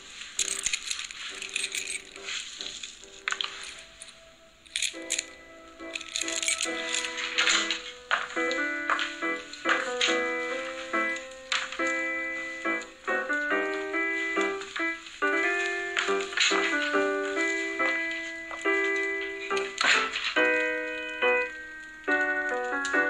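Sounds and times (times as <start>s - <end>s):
soft music: 0.0s - 23.0s
beads rattling in a hand: 0.2s - 7.8s.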